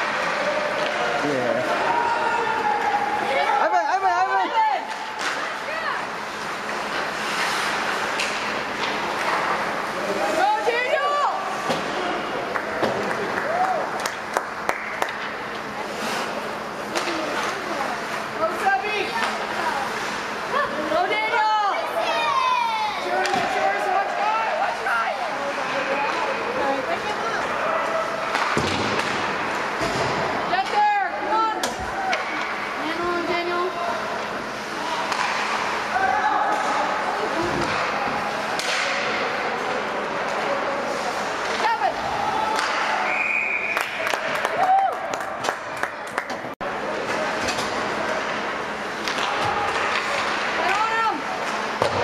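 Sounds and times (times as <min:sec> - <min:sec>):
pucks and bodies hitting boards: 0:00.0 - 0:03.5, 0:04.4 - 0:20.4, 0:23.0 - 0:33.4, 0:34.1 - 0:43.1, 0:45.4 - 0:52.0
spectators and players shouting: 0:00.0 - 0:04.9, 0:41.6 - 0:43.2
steady rink hum: 0:00.0 - 0:52.0.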